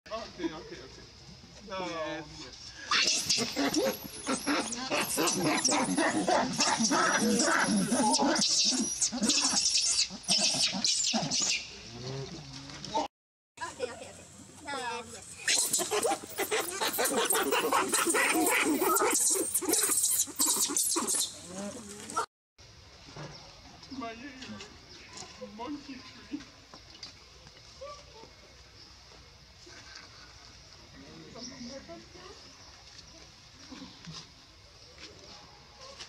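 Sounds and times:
faint monkey calls: 0:02.8 - 0:12.3, 0:15.4 - 0:22.3
young macaque screaming: 0:02.9 - 0:11.7, 0:15.4 - 0:22.2.

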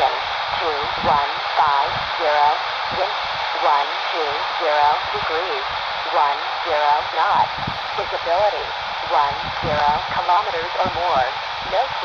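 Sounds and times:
radio hiss: 0:00.0 - 0:12.0
voice over radio speaker: 0:00.0 - 0:12.0.

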